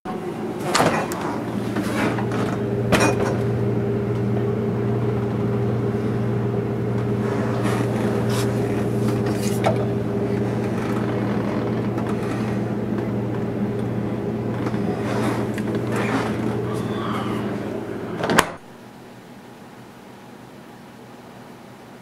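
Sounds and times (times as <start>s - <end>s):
refrigerator electrical hum: 0.1s - 22.0s.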